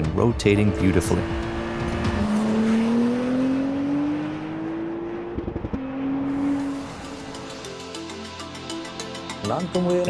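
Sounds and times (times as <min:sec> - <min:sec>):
car engine accelerating hard: 0:00.5 - 0:07.6.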